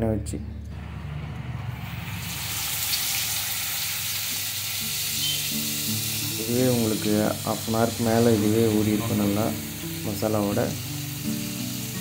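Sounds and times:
fish sizzling in hot oil: 0:00.8 - 0:12.0.

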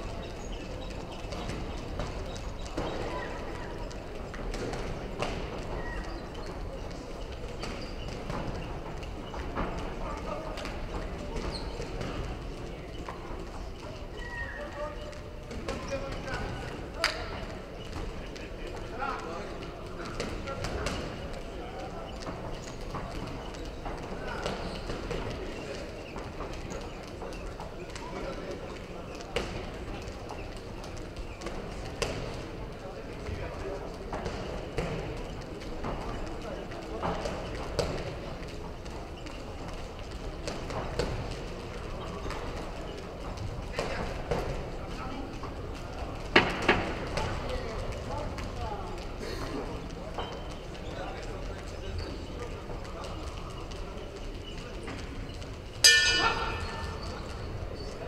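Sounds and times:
voices murmuring and calling out: 0:00.0 - 0:58.0.

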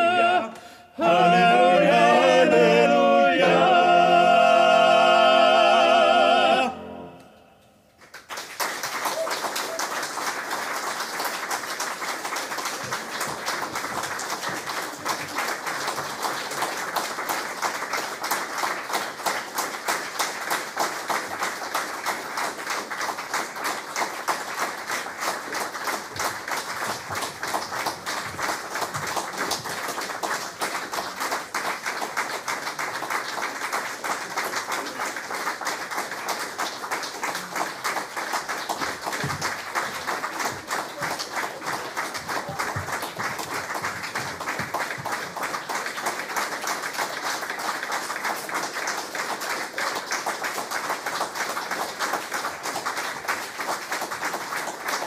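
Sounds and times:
audience clapping: 0:07.9 - 0:55.0.

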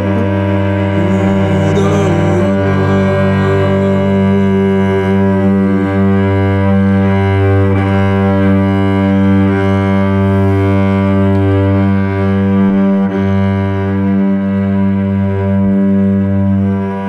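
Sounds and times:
cello bowing low notes: 0:00.0 - 0:17.0.

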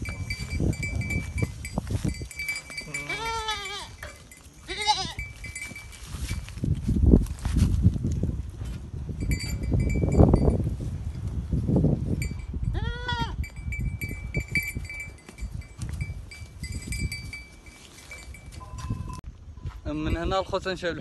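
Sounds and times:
animals rustling in straw: 0:00.2 - 0:08.0, 0:16.0 - 0:19.2
goat bleating: 0:02.7 - 0:05.3, 0:12.7 - 0:13.4.

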